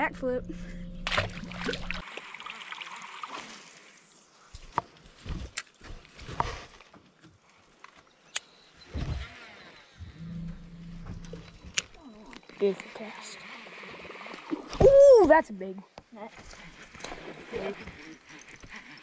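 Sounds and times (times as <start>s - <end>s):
fish splashing into water: 1.1s - 3.8s.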